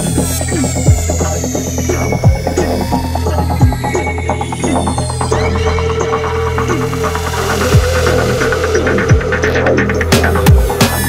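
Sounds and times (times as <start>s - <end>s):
deep bass drone: 0.0s - 11.0s
falling pitch sweep: 0.0s - 11.0s
steady mid-pitched tone: 0.0s - 11.0s.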